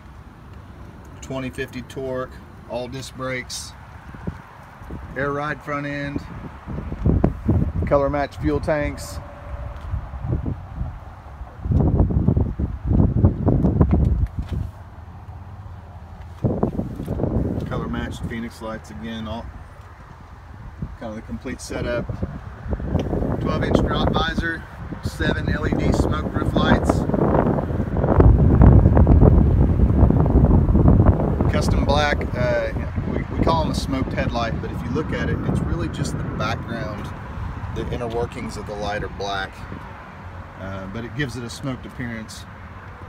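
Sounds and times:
wind buffeting microphone: 0.7s - 41.5s.

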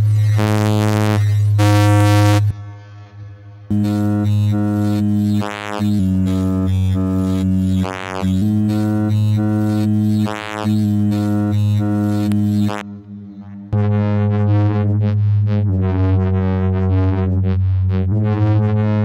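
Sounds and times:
low buzzy synth notes: 0.0s - 2.5s, 3.7s - 19.0s.

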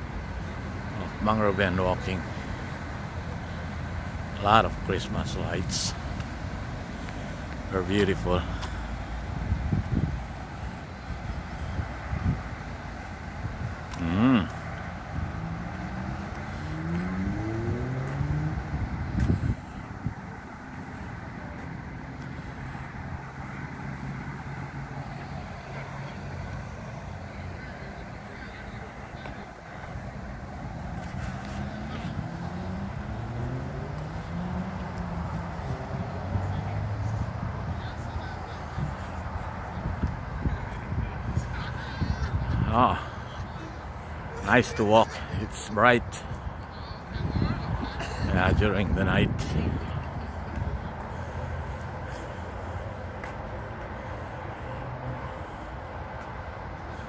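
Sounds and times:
cars driving past: 0.0s - 57.0s
traffic noise: 0.0s - 57.0s.

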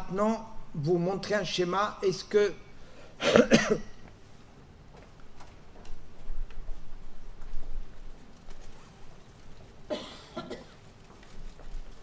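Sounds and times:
man coughing: 3.2s - 4.0s, 9.9s - 10.8s
faint clicks and rustles: 4.0s - 12.0s.

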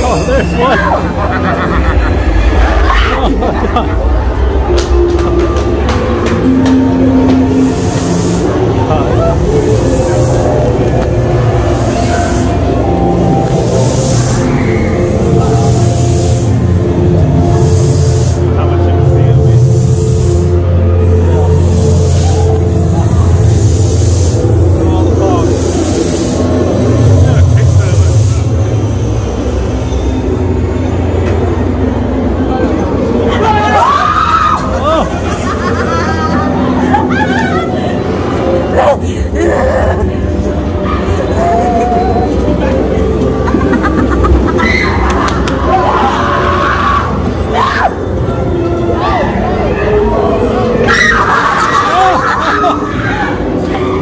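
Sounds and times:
low droning tones: 0.0s - 54.0s
heavy low rumble: 0.8s - 50.8s
hiss: 7.6s - 8.7s, 13.6s - 18.5s, 19.6s - 26.6s.

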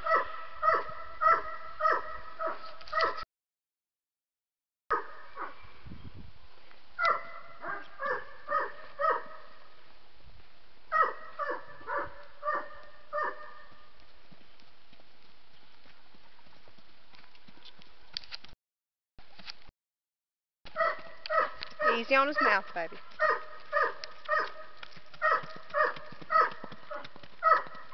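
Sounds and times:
dog barking: 0.0s - 3.2s, 4.9s - 5.6s, 7.0s - 9.6s, 10.9s - 13.7s, 20.8s - 27.9s
horse hoof steps on dirt: 12.1s - 18.6s, 20.7s - 27.9s.

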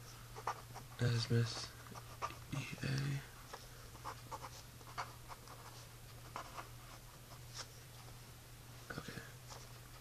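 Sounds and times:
pen scratching on paper: 0.4s - 2.8s, 3.9s - 7.7s.

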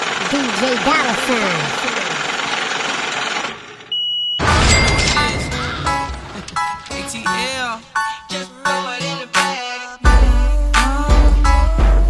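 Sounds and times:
dense mechanical noise effect: 0.0s - 7.5s
steady high beep: 3.9s - 5.8s.

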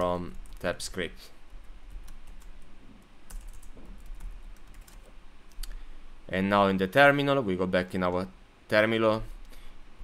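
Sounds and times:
computer keyboard typing: 1.9s - 2.6s, 3.3s - 5.1s.

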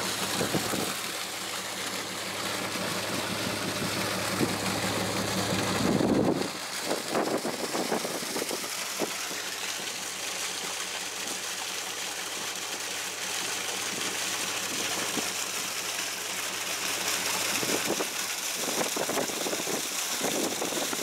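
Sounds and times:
engine running: 0.0s - 21.0s
water gushing into metal tank: 0.0s - 21.0s.

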